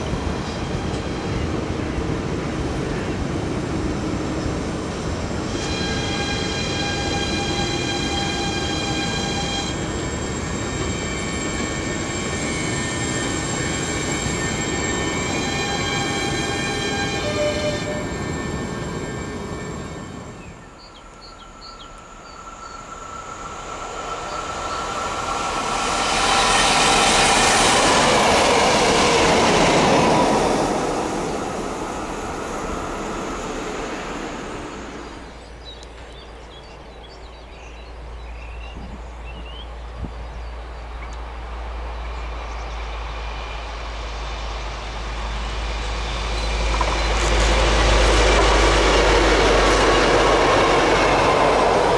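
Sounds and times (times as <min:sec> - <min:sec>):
diesel locomotives passing: 0:00.0 - 0:51.9
electric train whine: 0:00.0 - 0:51.9.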